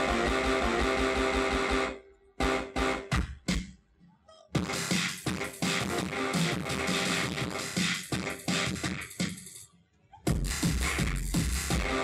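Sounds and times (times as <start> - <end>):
live electronic music: 0.0 - 3.6, 4.6 - 9.6, 10.3 - 12.0.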